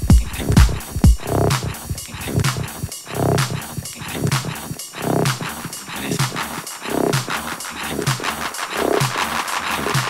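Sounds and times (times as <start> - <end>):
pulsing synth bass: 0.0 - 9.4
electronic dance music: 0.0 - 10.0
hi-hat ticks: 0.0 - 10.0.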